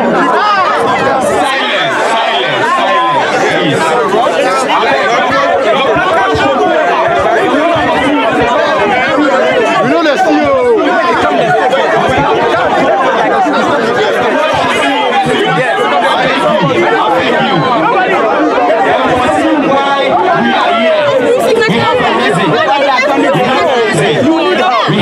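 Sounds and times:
crowd chatter: 0.0s - 25.0s
man talking into microphone: 1.4s - 25.0s.

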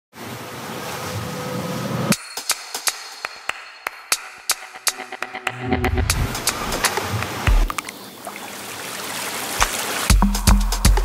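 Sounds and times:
ocean waves washing: 0.1s - 3.6s, 5.0s - 10.2s.

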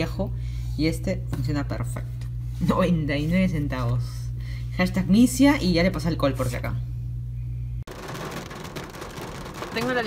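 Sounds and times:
low steady hum: 0.0s - 10.0s
rain on car windshield and roof: 7.9s - 10.0s.

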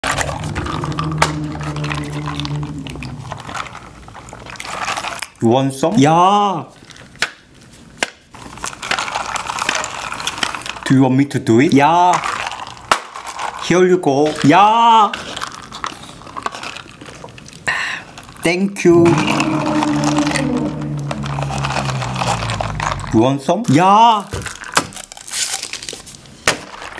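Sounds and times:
steady low hum: 0.0s - 4.4s, 18.9s - 23.3s.

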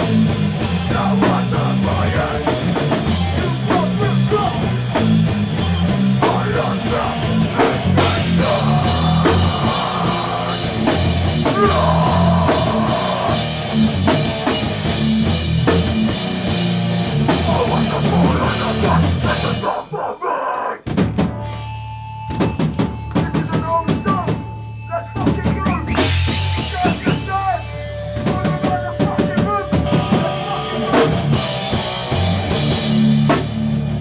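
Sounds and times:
distorted electric guitar: 0.0s - 20.0s, 20.9s - 34.0s
pounding drum kit: 0.0s - 20.1s, 20.8s - 21.5s, 22.3s - 34.0s
bass guitar: 0.0s - 20.2s, 20.8s - 34.0s.

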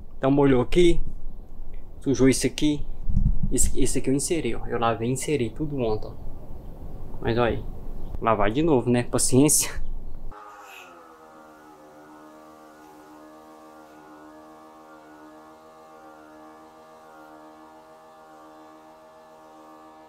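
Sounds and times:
pressure washer humming whine: 10.3s - 20.0s.

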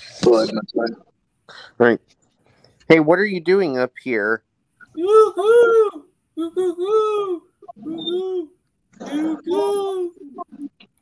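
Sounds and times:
person imitating pigeon cooing: 4.9s - 10.7s.

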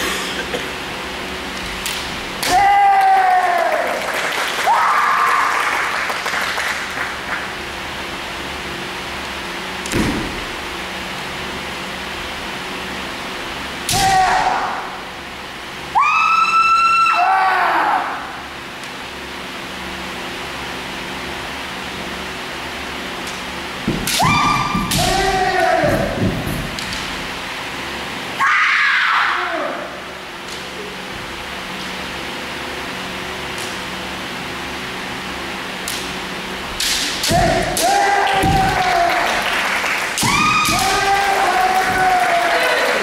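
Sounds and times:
steady low hum: 0.0s - 43.0s
fighters yelling: 2.4s - 4.0s, 13.9s - 15.0s, 24.2s - 26.2s, 37.3s - 39.4s, 40.2s - 43.0s.

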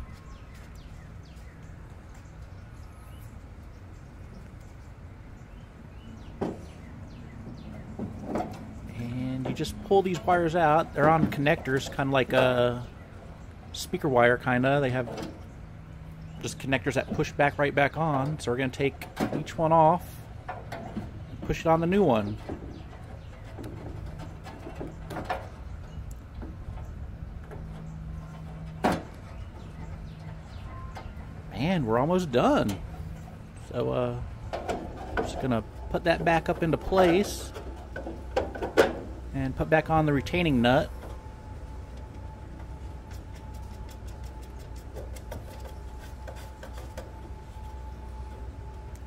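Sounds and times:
low background rumble: 0.0s - 49.0s
low steady hum: 0.0s - 49.0s.

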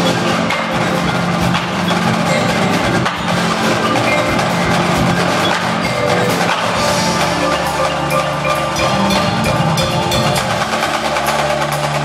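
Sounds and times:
marching drum strokes: 0.0s - 12.0s
marimbas and vibraphones: 0.0s - 12.0s.

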